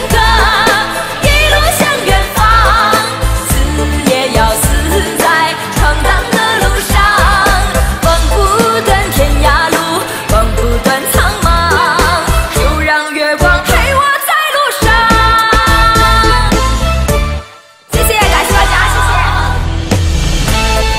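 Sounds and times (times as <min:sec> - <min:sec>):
woman singing into a microphone: 0:00.0 - 0:16.6
pop backing track with bass and drums: 0:00.0 - 0:20.9.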